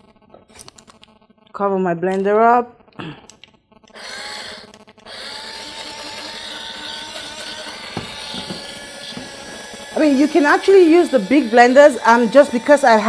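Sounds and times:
blender motor grinding oats: 0:03.9 - 0:13.0
blender clicks: 0:06.8 - 0:12.1.

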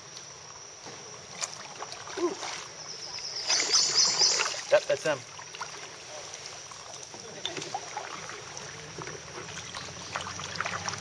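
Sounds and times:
high insect buzz: 0:00.0 - 0:05.8
water movement: 0:01.0 - 0:11.0.

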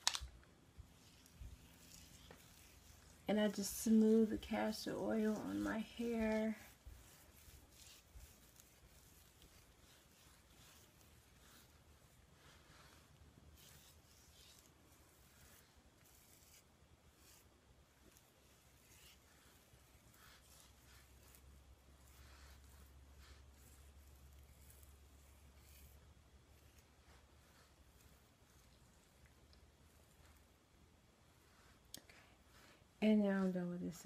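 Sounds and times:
fingers swishing through hair: 0:00.0 - 0:34.0
low steady hum: 0:00.0 - 0:34.0.

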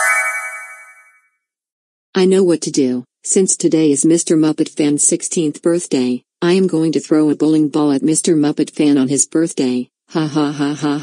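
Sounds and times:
cartoon chime: 0:00.0 - 0:01.2.

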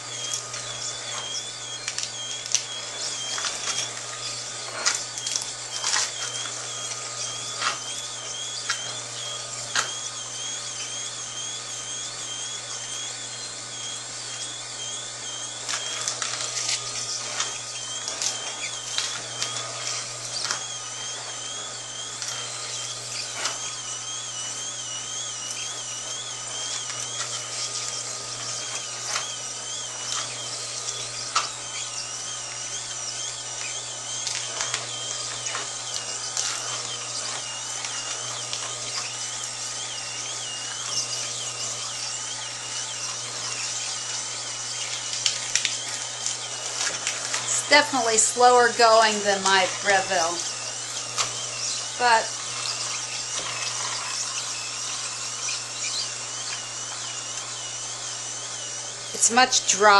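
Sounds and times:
juicer motor hum: 0:00.0 - 0:59.9
crackling of greens being crushed: 0:14.0 - 0:47.7.

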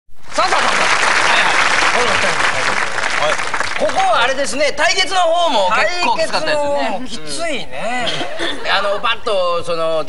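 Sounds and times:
audience applause: 0:00.2 - 0:04.4.

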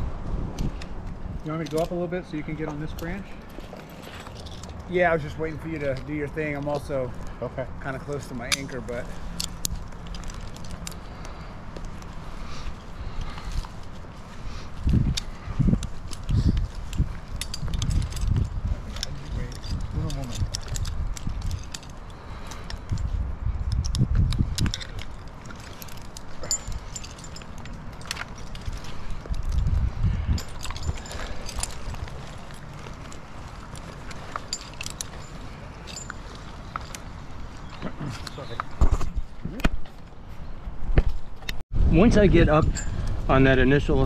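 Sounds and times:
metal climbing gear clinking: 0:00.6 - 0:44.0.

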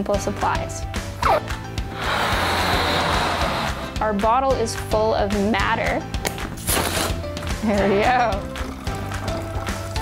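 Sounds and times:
background music: 0:00.0 - 0:10.0
breath inflating balloon: 0:01.2 - 0:04.0, 0:06.5 - 0:07.4.

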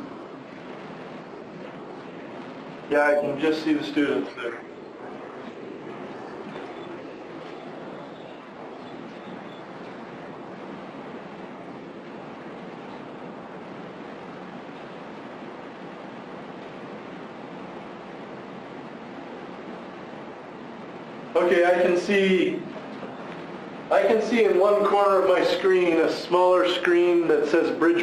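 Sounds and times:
steady room noise hiss: 0:00.0 - 0:28.0.

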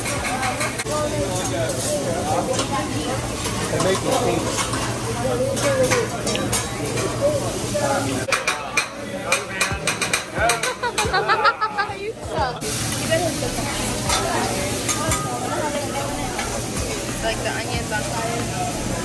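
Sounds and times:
voices chattering: 0:00.0 - 0:19.0
food sizzling on a griddle: 0:01.0 - 0:08.3, 0:12.6 - 0:19.0
spatula clacking on griddle: 0:08.3 - 0:11.2.

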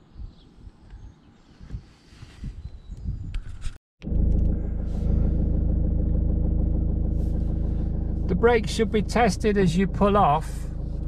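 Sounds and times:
car engine running inside cabin: 0:04.0 - 0:11.0.

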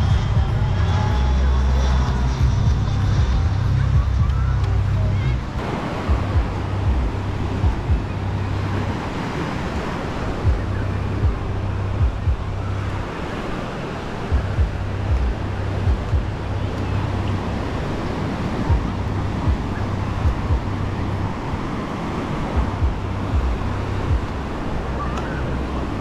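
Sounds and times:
music: 0:00.0 - 0:26.0
people's voices: 0:00.0 - 0:26.0
surf breaking on a beach: 0:00.0 - 0:26.0
wind buffeting microphone: 0:00.0 - 0:26.0.

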